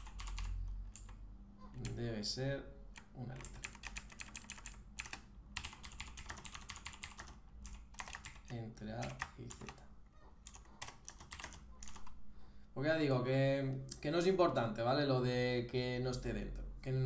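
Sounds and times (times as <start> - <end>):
typing on computer keyboard: 0.0 - 1.2, 3.0 - 9.8, 10.4 - 12.2.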